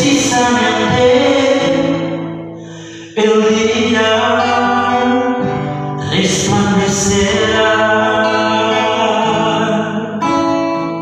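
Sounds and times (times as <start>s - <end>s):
man singing: 0.0s - 10.5s
strummed classical guitar: 0.0s - 11.0s.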